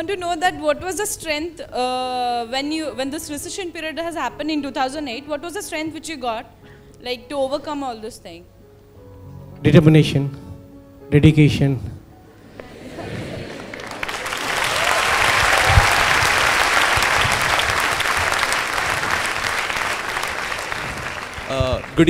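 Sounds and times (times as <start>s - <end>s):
audience applauding: 12.9s - 22.0s.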